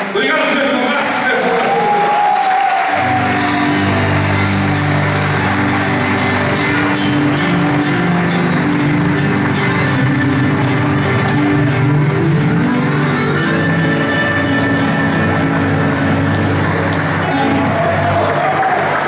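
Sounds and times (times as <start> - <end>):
audience clapping along: 0.0 - 19.0
bass: 2.9 - 19.0
dance band with accordion and guitars: 3.0 - 18.3.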